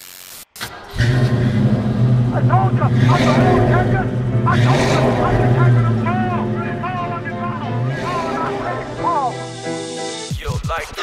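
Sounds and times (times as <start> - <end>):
car engine running: 0.7 - 9.8.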